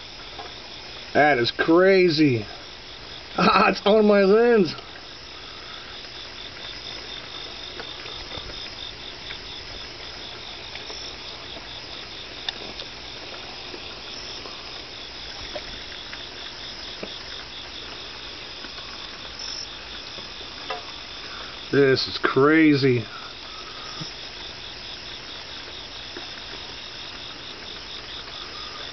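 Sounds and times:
crickets chirping: 0.0s - 28.9s.

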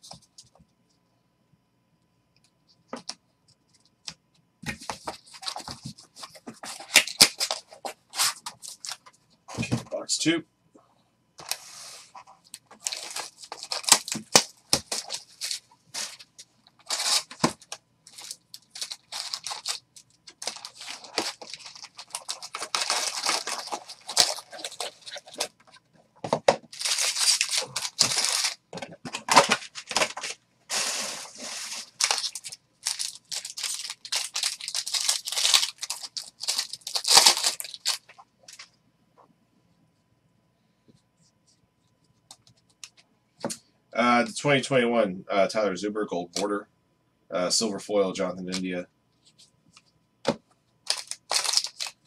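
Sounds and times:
card pack wrappers ripping: 4.9s - 9.0s, 12.8s - 16.2s, 16.8s - 25.6s, 26.6s - 38.1s, 50.9s - 52.0s
wrappers crinkling: 12.6s - 25.8s, 26.6s - 28.6s, 29.2s - 38.6s, 50.9s - 52.0s.

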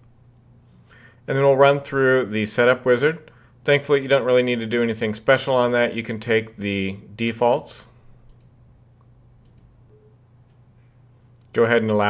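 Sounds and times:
low steady hum: 0.0s - 12.0s
computer mouse clicks: 8.2s - 8.6s, 9.4s - 9.8s.

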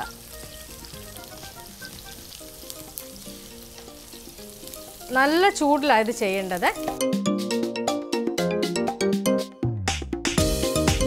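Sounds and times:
food sizzling in a frying pan: 0.0s - 7.0s
soft background music: 0.0s - 9.8s.

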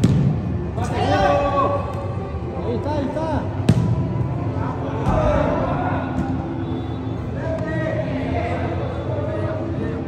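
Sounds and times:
soccer ball kick thud: 0.0s - 0.4s, 3.6s - 4.0s.

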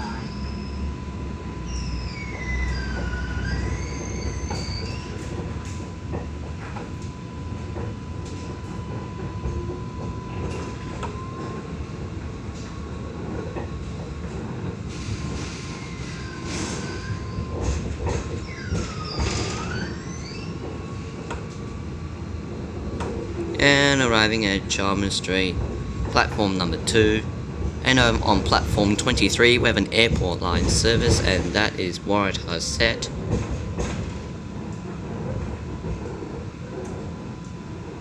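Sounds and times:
high wavering wheel squeal: 0.0s - 5.7s, 15.2s - 17.6s, 18.2s - 21.1s
tram running hum: 0.0s - 38.0s.

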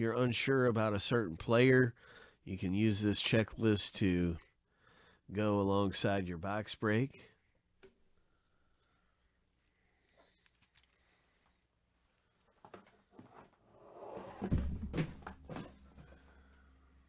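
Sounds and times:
heavy thump: 14.4s - 15.8s.

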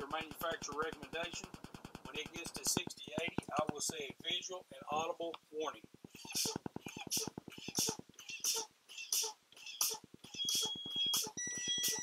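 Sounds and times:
warning buzzer high tone: 10.4s - 12.0s.

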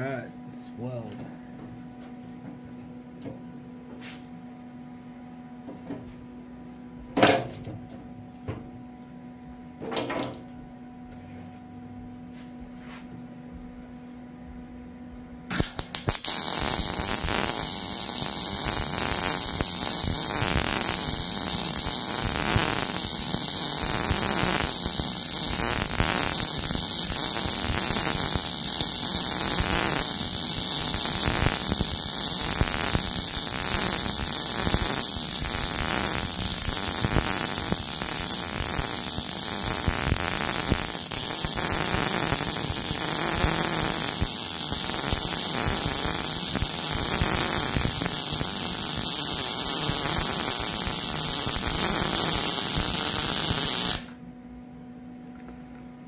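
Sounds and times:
welding arc crackling and hissing: 15.5s - 54.2s.

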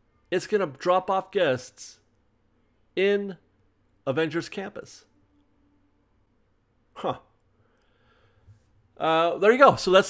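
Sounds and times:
man speaking: 0.3s - 2.1s, 3.0s - 5.1s, 9.0s - 10.0s.

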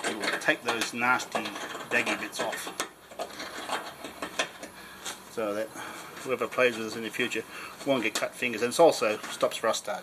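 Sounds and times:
deburring tool scraping metal: 0.0s - 4.7s.

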